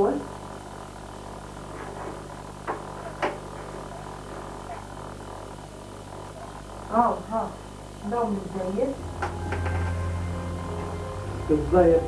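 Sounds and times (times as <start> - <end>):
low electrical hum and hiss: 0.0 - 12.0.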